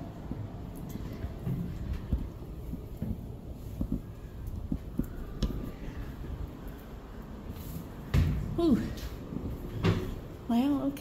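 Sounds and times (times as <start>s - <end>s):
footsteps on concrete floor: 0.2s - 6.0s.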